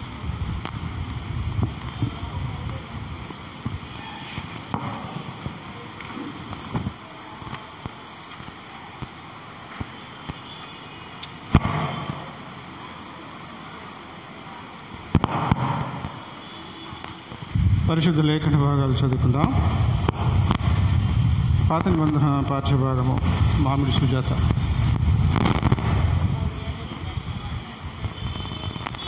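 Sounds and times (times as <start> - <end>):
room noise in a hall: 0.0 - 29.0.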